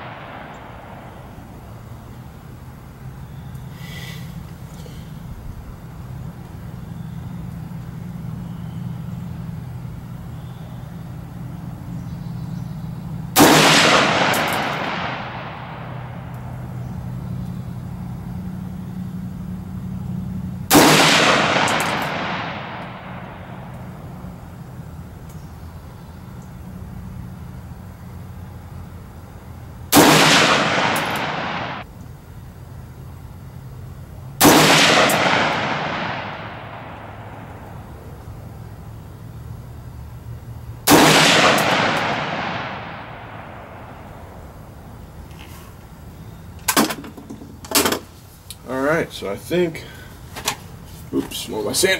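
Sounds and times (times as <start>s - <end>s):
rifle shots with echo: 0.0s - 1.8s, 13.4s - 16.8s, 20.7s - 24.2s, 29.9s - 31.9s, 34.4s - 37.9s, 40.9s - 44.4s.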